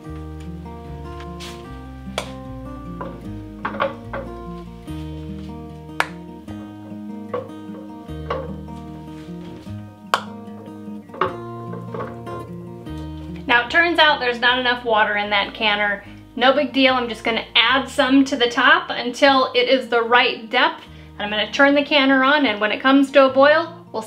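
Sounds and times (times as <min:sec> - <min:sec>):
acoustic guitar music: 0:00.0 - 0:24.0
woman speaking: 0:13.5 - 0:24.0.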